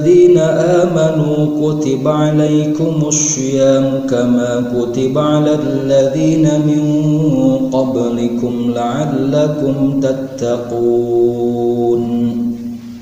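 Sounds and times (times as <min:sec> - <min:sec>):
man chanting melodically: 0:00.0 - 0:12.9.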